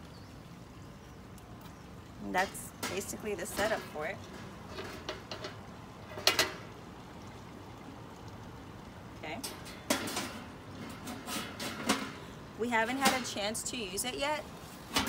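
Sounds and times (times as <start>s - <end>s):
metal lid clanking onto grill: 2.5s - 6.7s, 9.4s - 12.3s.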